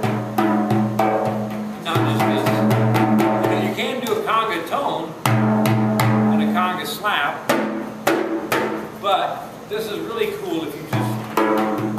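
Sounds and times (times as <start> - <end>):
frame drum strokes: 0.0 - 4.2, 5.2 - 6.7, 7.4 - 9.0, 10.8 - 11.9.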